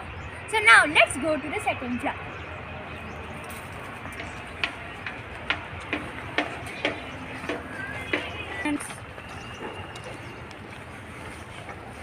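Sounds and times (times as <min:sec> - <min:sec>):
low outdoor background noise: 0:00.0 - 0:12.0
footsteps on dirt path: 0:02.4 - 0:12.0.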